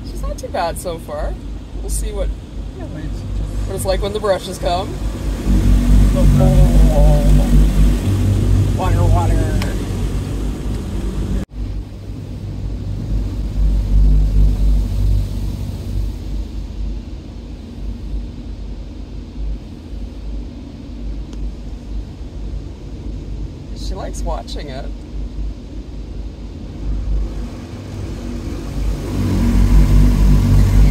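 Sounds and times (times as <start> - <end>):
water hissing over car: 0.0 - 20.6, 26.6 - 30.9
car wash machinery rumble: 0.0 - 30.9.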